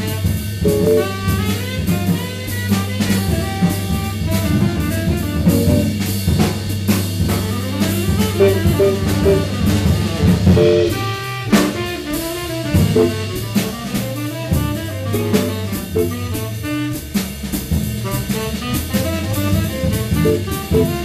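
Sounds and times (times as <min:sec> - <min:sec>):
saxophone: 0:00.0 - 0:06.1, 0:07.3 - 0:17.2, 0:18.0 - 0:21.0
drum and cymbal strokes: 0:00.0 - 0:21.0
low bass line: 0:00.5 - 0:01.6, 0:03.2 - 0:11.2, 0:12.6 - 0:16.7, 0:19.7 - 0:21.0.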